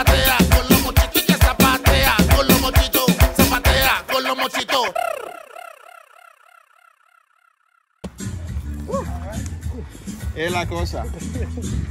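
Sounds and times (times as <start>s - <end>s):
song music: 0.0s - 5.7s, 8.1s - 11.9s
warbling echo chirps: 4.8s - 8.0s
person speaking outdoors: 8.9s - 11.6s.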